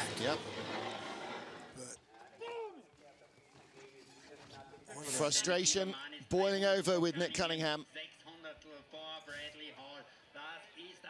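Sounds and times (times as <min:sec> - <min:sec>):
background noise: 0:00.0 - 0:11.0.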